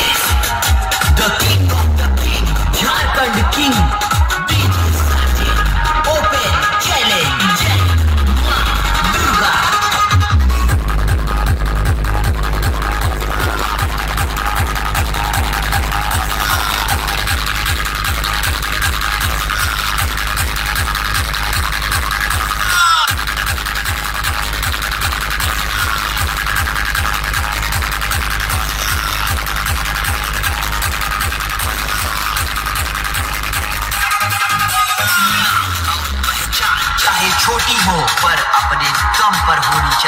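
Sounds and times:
electronic dance music with heavy bass: 0.0s - 40.0s.

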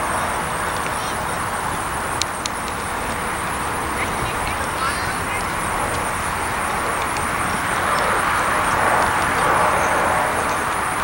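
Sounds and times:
jet engine rushing: 0.0s - 11.0s.

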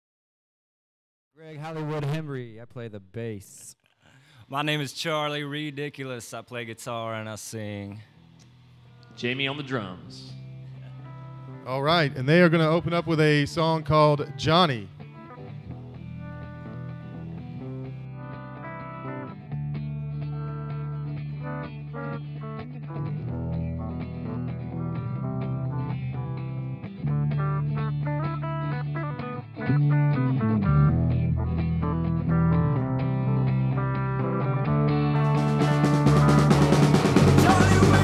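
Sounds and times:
sustained bass guitar: 10.2s - 38.0s
electric guitars: 10.3s - 11.7s, 14.3s - 38.0s.

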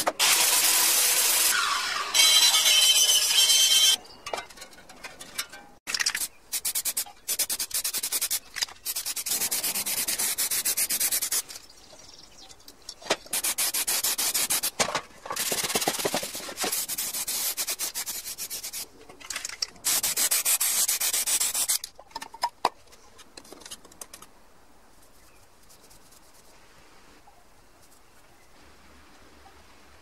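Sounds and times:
spray paint can hissing: 6.0s - 11.6s, 13.3s - 14.8s, 16.6s - 18.8s, 19.8s - 21.9s.

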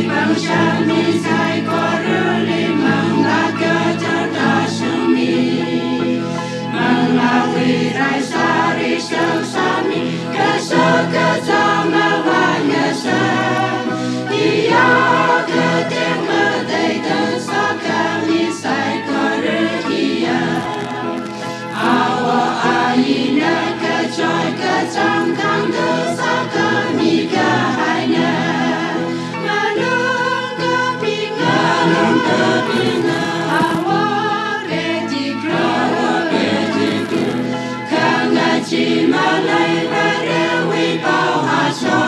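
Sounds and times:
choir singing gospel: 0.0s - 42.0s.

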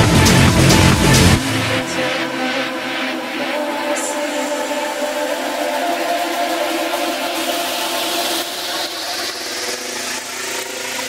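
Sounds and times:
noisy whirring texture: 0.0s - 11.0s.

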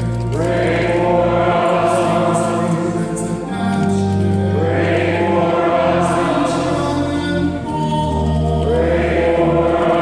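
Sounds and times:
choir chanting: 0.3s - 3.7s, 4.4s - 7.5s, 8.5s - 10.0s.

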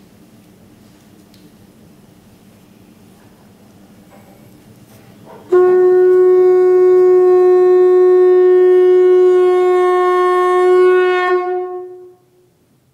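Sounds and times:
long horn note: 5.3s - 12.4s.

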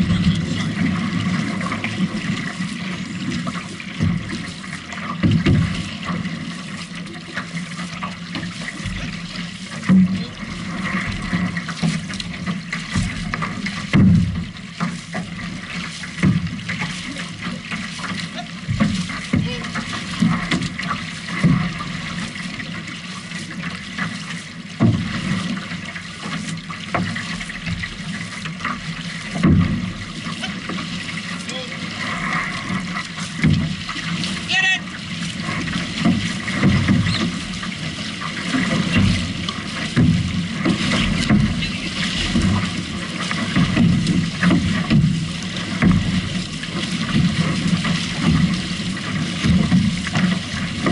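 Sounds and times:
paddles splashing into water: 0.0s - 50.9s
water rushing along hull: 0.0s - 50.9s.

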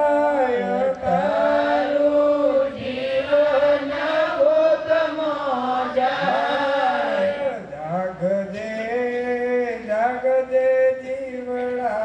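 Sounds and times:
man chanting into a microphone: 0.0s - 2.1s, 3.2s - 12.0s.

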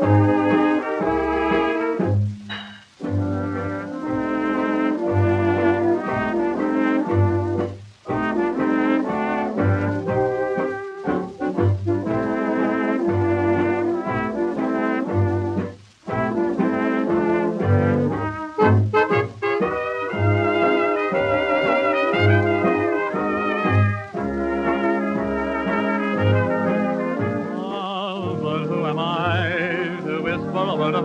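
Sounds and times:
bass notes: 0.0s - 27.5s
brass melody: 0.0s - 31.0s
dance orchestra music: 0.0s - 31.0s.

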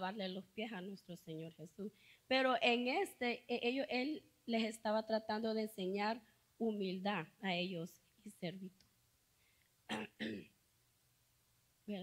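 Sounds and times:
woman clearing her throat: 9.9s - 10.6s.

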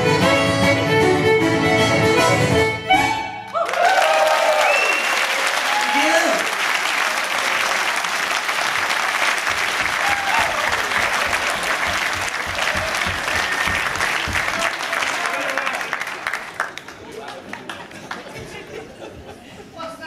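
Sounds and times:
people whooping and shouting: 3.5s - 6.5s, 9.8s - 11.8s
audience applauding: 3.5s - 18.7s.

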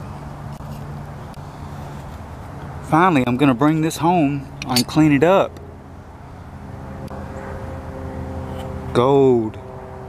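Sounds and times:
distant engine droning: 0.0s - 10.0s.

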